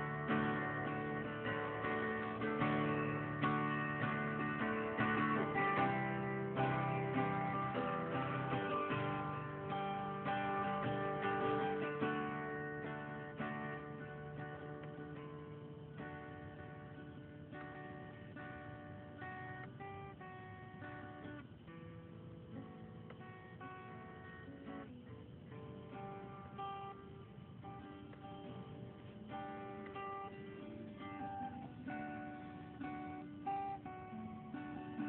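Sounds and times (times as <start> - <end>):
guitar playing: 0.0 - 35.0.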